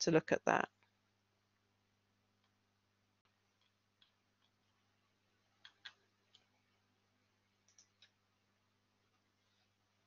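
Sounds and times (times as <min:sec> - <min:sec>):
faint computer clicks: 0:05.6 - 0:06.6, 0:07.6 - 0:08.2.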